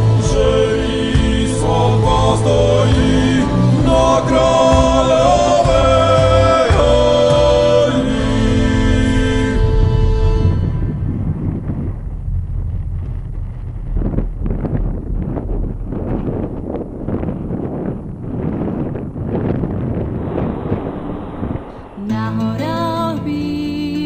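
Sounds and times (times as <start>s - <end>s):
music: 0.0s - 11.1s, 22.0s - 24.0s
wind buffeting microphone: 0.0s - 24.0s.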